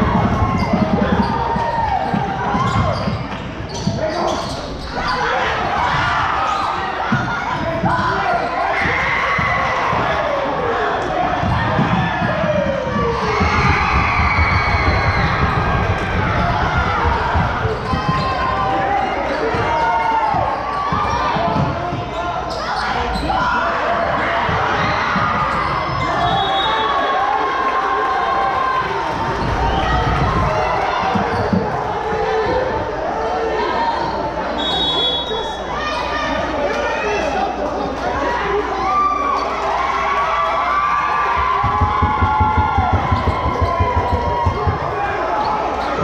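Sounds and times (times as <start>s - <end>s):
voices of players and spectators: 0.0s - 46.0s
shoe squeaks: 2.6s - 5.4s
basketball dribbling on hardwood: 41.6s - 44.8s.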